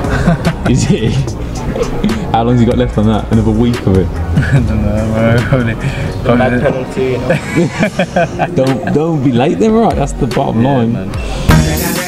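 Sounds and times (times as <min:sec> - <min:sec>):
laughter: 0:00.0 - 0:02.2, 0:04.4 - 0:04.7, 0:07.3 - 0:09.0
men talking: 0:00.0 - 0:12.0.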